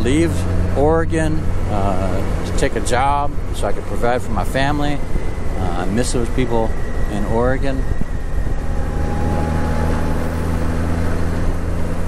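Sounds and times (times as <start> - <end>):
wind and road noise: 0.0 - 12.0
motorcycle engine running: 8.0 - 12.0.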